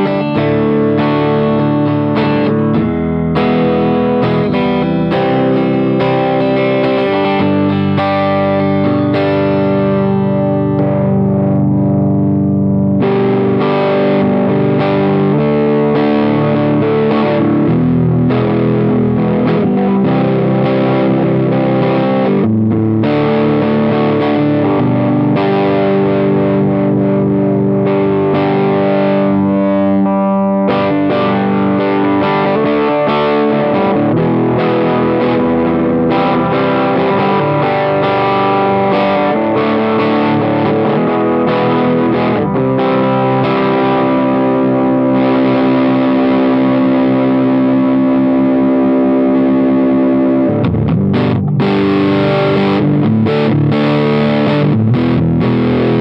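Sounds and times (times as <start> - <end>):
distorted electric guitar chords: 0.0 - 56.0.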